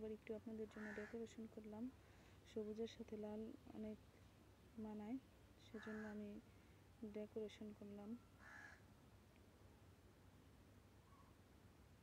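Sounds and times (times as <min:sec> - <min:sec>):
crow cawing faintly: 0:00.8 - 0:01.2, 0:08.4 - 0:08.9.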